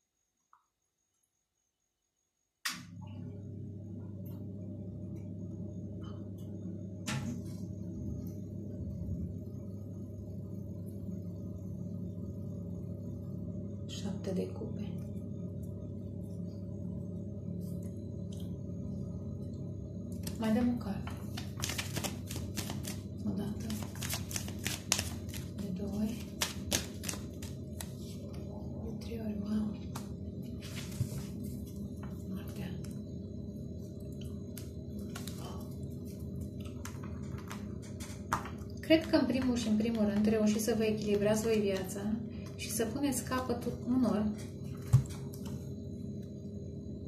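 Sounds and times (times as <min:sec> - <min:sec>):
machine humming: 0:02.7 - 0:47.0
cards being shuffled: 0:21.3 - 0:23.0, 0:23.6 - 0:25.6, 0:26.2 - 0:28.0.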